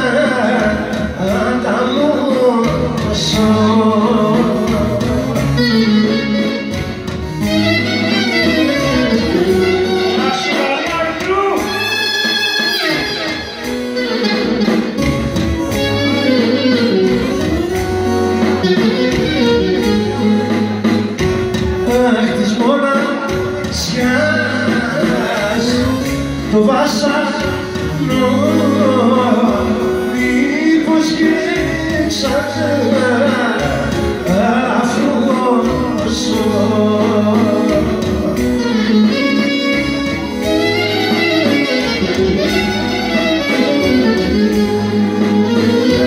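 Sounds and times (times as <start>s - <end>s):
person singing: 0.0s - 6.8s, 7.4s - 20.9s, 21.5s - 46.0s
folk dance band playing: 0.0s - 46.0s
keyboard accompaniment: 0.0s - 46.0s
clarinet lead: 4.3s - 22.3s, 23.7s - 46.0s.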